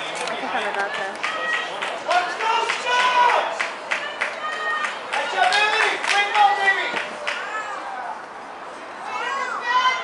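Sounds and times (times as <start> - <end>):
girls shouting high-pitched calls: 7.4 - 8.2, 9.0 - 10.0.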